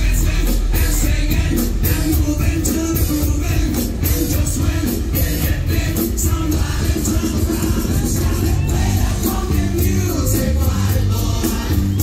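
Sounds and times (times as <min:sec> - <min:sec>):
loud amplified concert music: 0:00.0 - 0:12.0.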